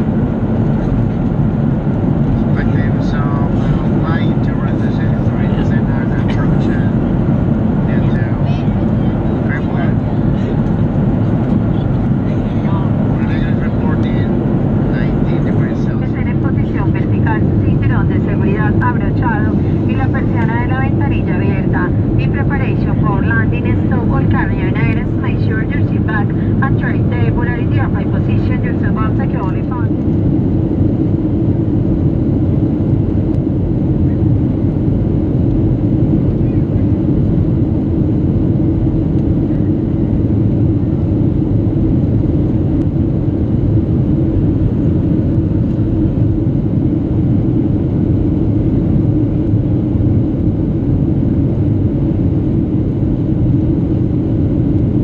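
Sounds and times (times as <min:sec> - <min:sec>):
airplane cabin rumble: 0:00.0 - 0:55.0
faint voices talking: 0:11.6 - 0:29.9.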